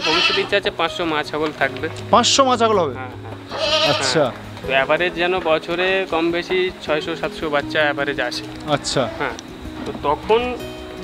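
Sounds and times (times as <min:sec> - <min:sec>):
goats bleating: 0:00.0 - 0:00.7, 0:03.3 - 0:04.4.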